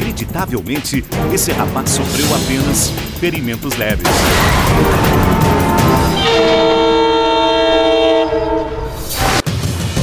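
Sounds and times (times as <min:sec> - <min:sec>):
train horn chord: 0:04.4 - 0:09.4.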